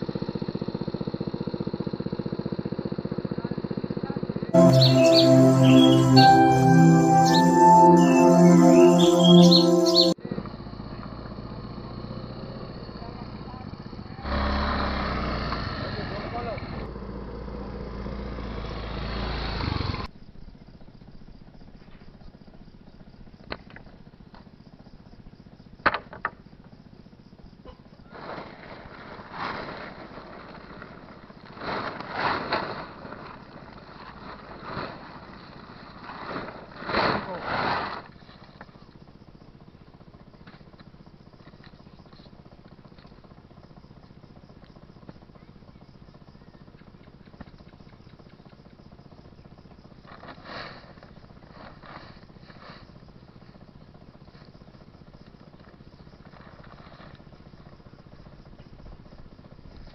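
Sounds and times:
small motorcycle engine running: 0:00.0 - 0:04.5, 0:10.2 - 0:59.9.

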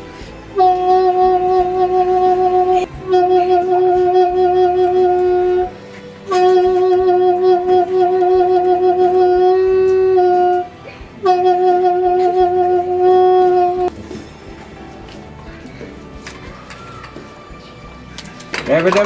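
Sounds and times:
animal horn blasts: 0:00.5 - 0:13.9.

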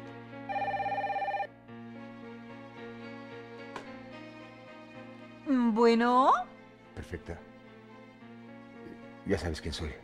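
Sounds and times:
background music: 0:00.0 - 0:10.0
cordless telephone ringing: 0:00.5 - 0:01.5.

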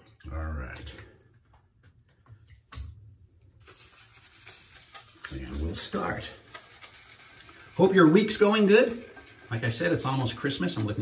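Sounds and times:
faint steady hiss: 0:03.6 - 0:11.0.

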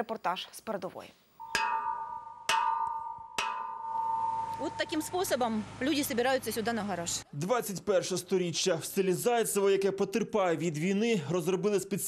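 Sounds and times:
metal rod clanging on steel pipe: 0:01.5 - 0:04.7.

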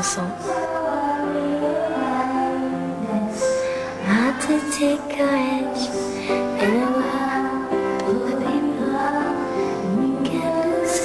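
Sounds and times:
woman singing slow song: 0:00.0 - 0:11.0.

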